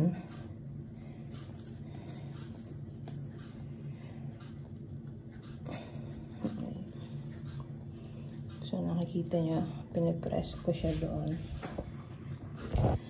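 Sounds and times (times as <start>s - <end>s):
hands rolling dough on board: 1.0s - 13.0s.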